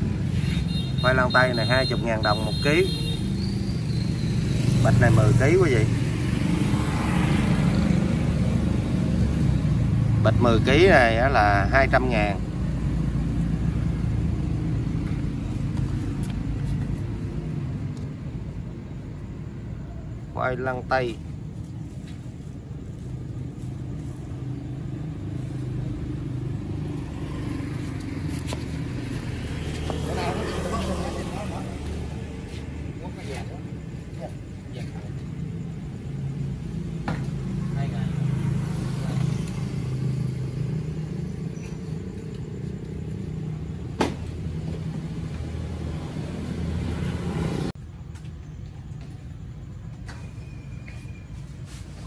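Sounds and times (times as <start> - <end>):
vehicle engine rumbling: 2.1 - 52.0.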